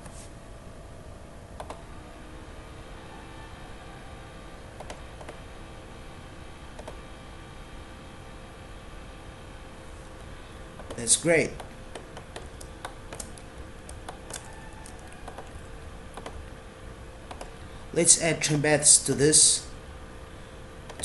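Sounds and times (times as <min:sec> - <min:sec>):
steady background hum: 0:00.0 - 0:21.0
keyboard and mouse clicks: 0:01.6 - 0:01.8, 0:04.8 - 0:05.4, 0:06.8 - 0:07.0, 0:10.8 - 0:11.0, 0:11.6 - 0:16.4, 0:17.3 - 0:17.6.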